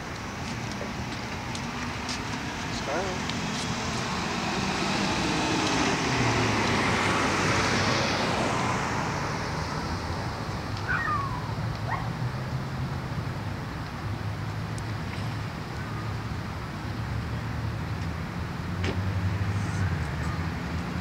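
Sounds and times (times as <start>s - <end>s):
car passing: 0.8s - 21.0s.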